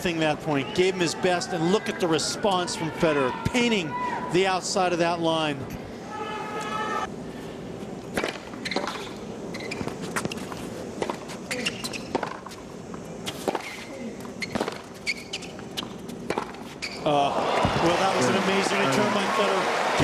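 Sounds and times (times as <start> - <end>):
tennis balls bouncing: 8.0 - 18.0
tennis balls struck by racquets: 8.1 - 10.4, 11.0 - 12.6, 13.2 - 13.8, 14.5 - 16.7
shoe squeaks: 8.2 - 17.1
crowd applause and cheering: 17.1 - 20.0.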